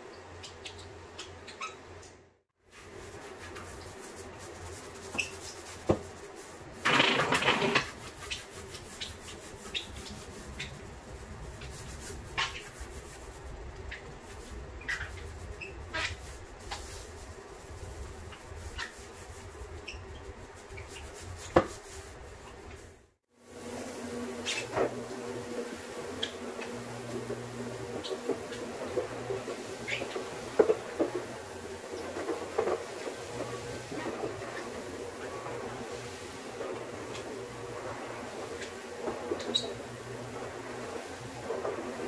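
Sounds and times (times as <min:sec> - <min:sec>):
squeaks and clicks on wet floor: 0:00.2 - 0:02.2, 0:05.1 - 0:05.7, 0:06.9 - 0:10.8, 0:12.3 - 0:12.8, 0:13.8 - 0:16.9, 0:18.3 - 0:19.2, 0:19.8 - 0:21.6, 0:24.4 - 0:42.0.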